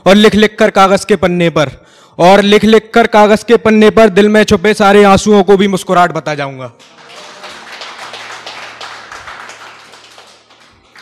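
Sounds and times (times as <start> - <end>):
faint background music: 0.0 - 11.0
audience clapping: 6.8 - 11.0.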